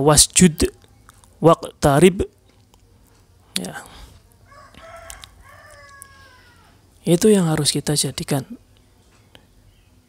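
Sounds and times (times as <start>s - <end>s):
rooster crowing: 4.4s - 6.8s.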